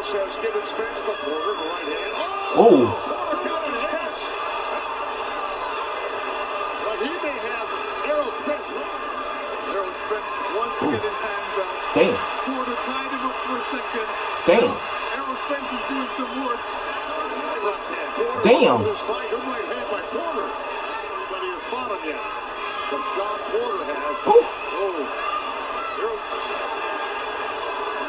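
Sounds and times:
arena crowd noise: 0:02.4 - 0:03.5, 0:04.3 - 0:12.8, 0:14.1 - 0:15.1, 0:17.9 - 0:19.1, 0:22.1 - 0:28.0
commentator talking: 0:02.5 - 0:03.1, 0:10.8 - 0:11.1, 0:12.0 - 0:12.2, 0:14.5 - 0:14.8, 0:18.4 - 0:19.0, 0:24.3 - 0:24.5.

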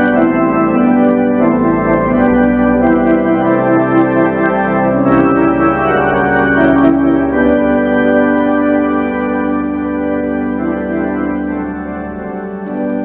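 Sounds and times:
church organ chords: 0:00.0 - 0:13.0.

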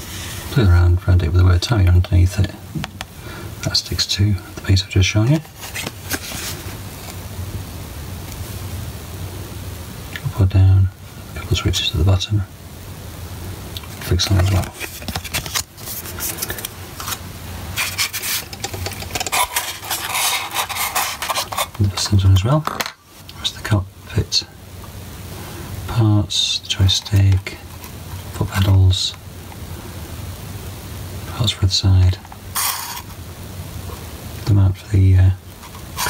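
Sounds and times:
rubbing and scraping handling noise: 0:00.0 - 0:03.1, 0:03.7 - 0:07.2, 0:13.9 - 0:23.4, 0:26.7 - 0:29.2, 0:32.1 - 0:33.2, 0:35.5 - 0:36.0
plastic bag crinkling: 0:14.1 - 0:22.1, 0:32.4 - 0:33.2.

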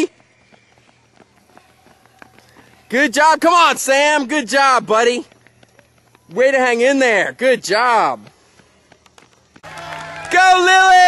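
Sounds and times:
children running on asphalt: 0:00.0 - 0:11.0.

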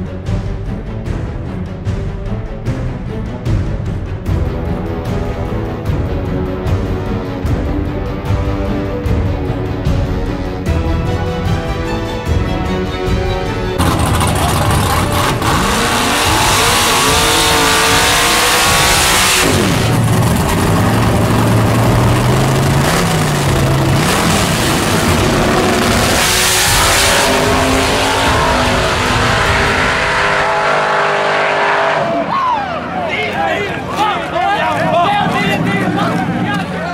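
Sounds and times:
pickup engine revving hard: 0:13.8 - 0:32.3.

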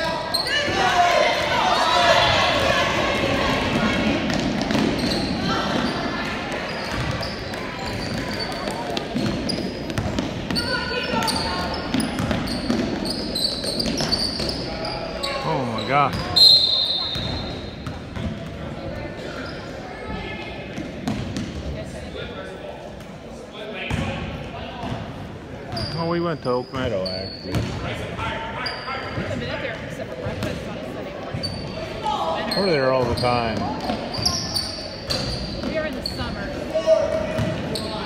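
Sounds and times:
sneakers squeaking: 0:00.0 - 0:22.3, 0:23.9 - 0:38.0
faint background chatter: 0:00.0 - 0:38.0
people talking in echoing gym: 0:00.0 - 0:38.0.

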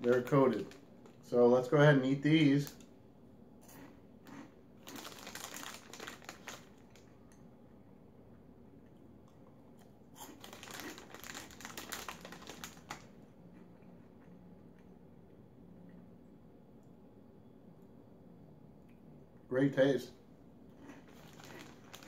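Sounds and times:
crunchy snack being chewed: 0:03.6 - 0:07.4, 0:08.9 - 0:14.4, 0:20.7 - 0:22.0.

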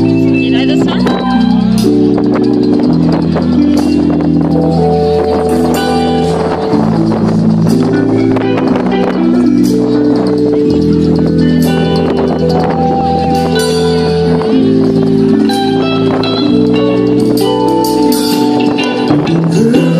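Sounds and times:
bass line: 0:00.0 - 0:19.9
drums and percussion: 0:00.0 - 0:19.9
keyboard chords: 0:00.0 - 0:19.9.

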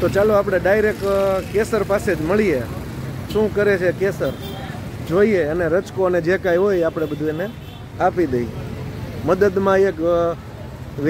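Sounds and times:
man speaking: 0:00.0 - 0:08.6, 0:09.2 - 0:10.4
road traffic: 0:00.0 - 0:11.0.

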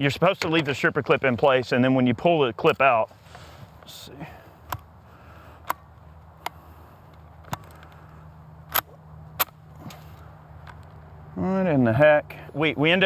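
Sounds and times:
pistol action metal clicks: 0:08.7 - 0:09.6.

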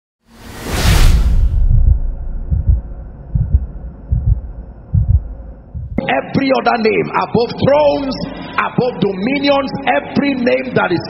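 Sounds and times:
low drone: 0:00.3 - 0:06.0
heartbeat double thumps: 0:01.4 - 0:06.0.

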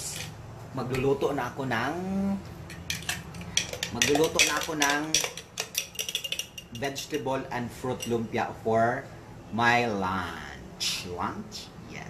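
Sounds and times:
spoon clinking against glass jar: 0:02.7 - 0:07.3, 0:07.9 - 0:08.2.

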